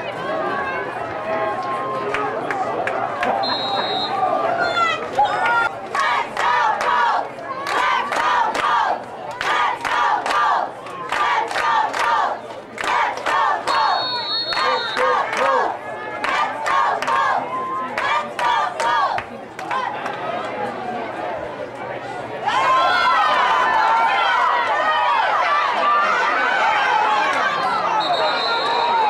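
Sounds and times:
crowd shouting and yelling: 0.0 - 29.0
high whistle: 3.4 - 4.8, 13.7 - 15.1, 27.9 - 29.0.

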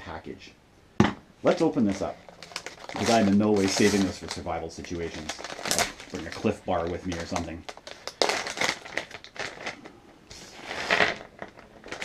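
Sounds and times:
wrapper crinkling: 1.5 - 12.0
tablets spilling onto table: 1.6 - 5.4.

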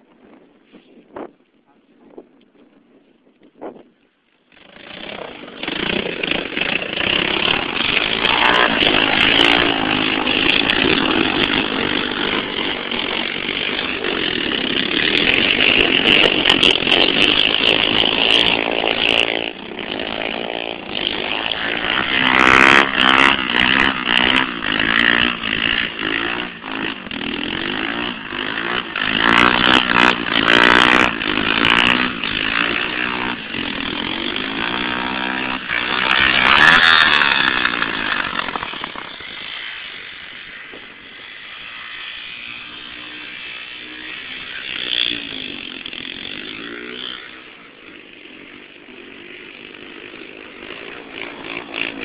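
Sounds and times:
quad engines revving: 4.4 - 52.0.

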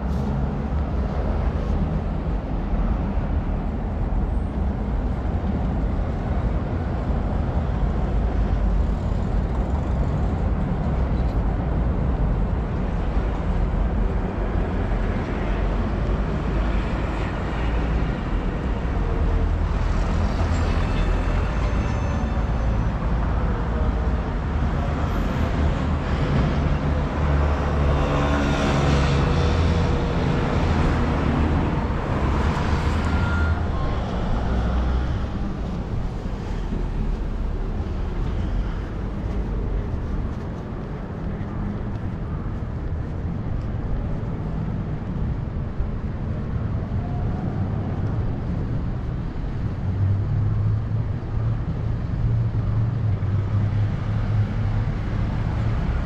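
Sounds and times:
street traffic noise: 0.0 - 56.0.

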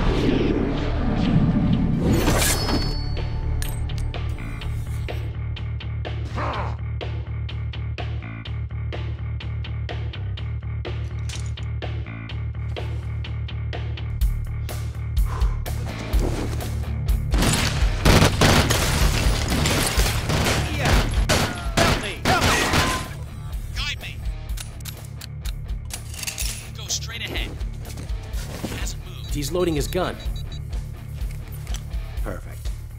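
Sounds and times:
rhythmic action film score: 0.0 - 32.9
rapid gunfire and hits: 17.3 - 23.2.

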